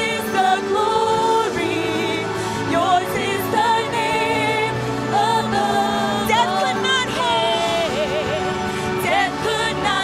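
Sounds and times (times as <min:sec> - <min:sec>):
worship team singing: 0:00.0 - 0:10.0.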